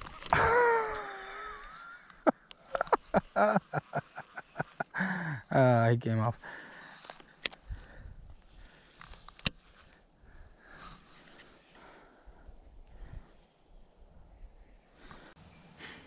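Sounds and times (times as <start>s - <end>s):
person breathing: 4.9s - 5.5s, 6.4s - 13.6s, 14.9s - 16.0s.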